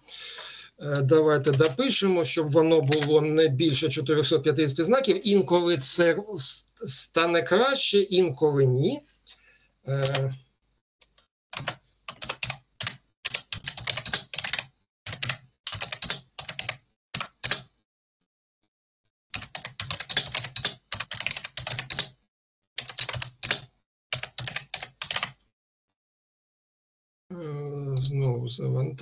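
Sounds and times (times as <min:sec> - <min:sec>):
typing on computer keyboard: 0:00.9 - 0:01.8, 0:02.8 - 0:03.2, 0:10.0 - 0:10.3, 0:11.6 - 0:17.7, 0:19.4 - 0:22.2, 0:22.8 - 0:25.4.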